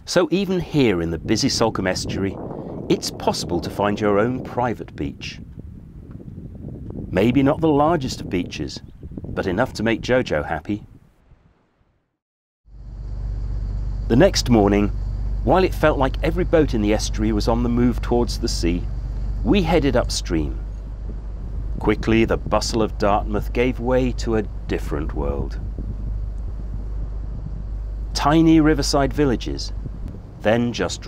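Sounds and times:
wind noise on microphone: 0.0 - 11.6, 12.8 - 31.0
motor boat engine humming: 12.7 - 30.8.

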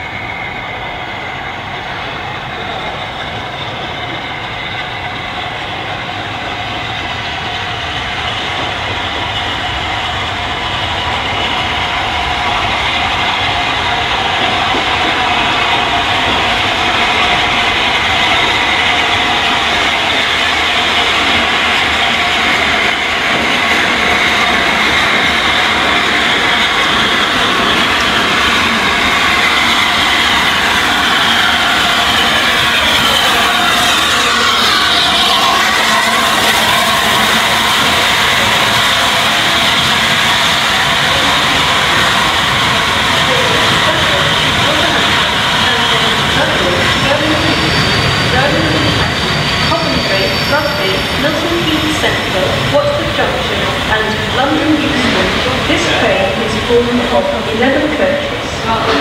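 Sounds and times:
steam locomotive and carriages rolling: 0.0 - 59.0.

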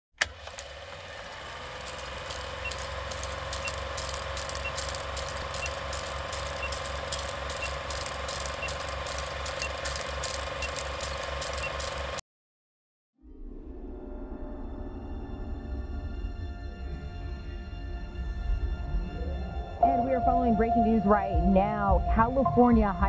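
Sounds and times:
film projector whirring and clicking: 0.2 - 12.2
short high beeps: 2.6 - 12.0.

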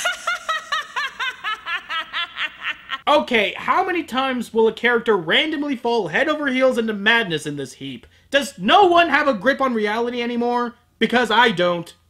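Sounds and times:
woman laughing maniacally: 0.0 - 3.0.

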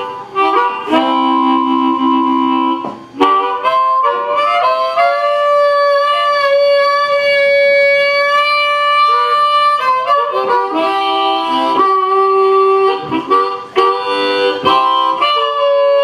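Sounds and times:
harmonica playing: 0.0 - 16.0.

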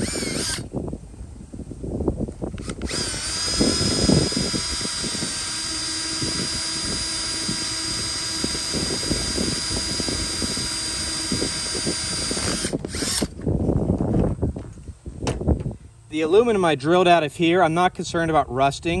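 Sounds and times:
drill bit grinding into metal: 0.0 - 0.7, 2.6 - 13.4
cordless drill motor whine: 0.0 - 0.8, 2.5 - 13.6.

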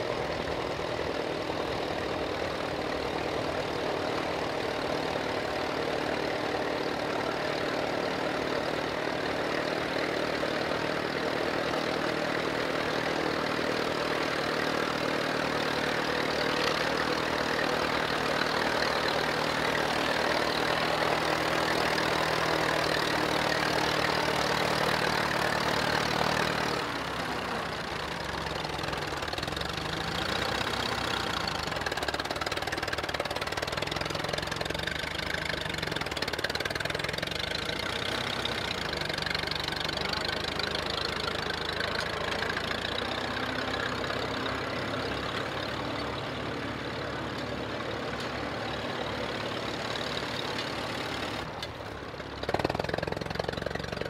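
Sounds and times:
tractor engine running: 0.0 - 54.0.

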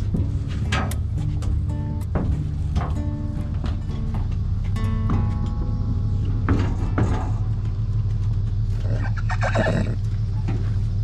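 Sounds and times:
hooves knocking and scraping: 0.0 - 11.0
steady low rumble: 0.0 - 11.0.

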